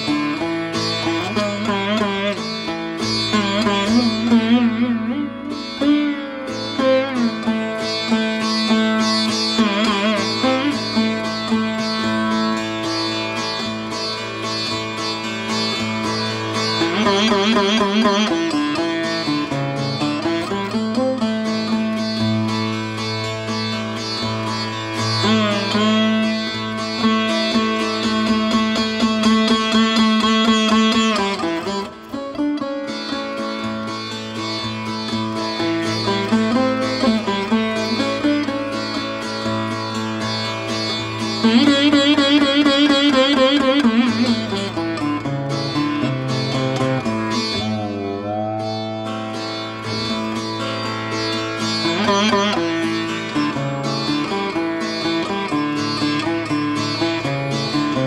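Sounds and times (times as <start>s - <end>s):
bass sitar plucked notes: 0.0s - 58.0s.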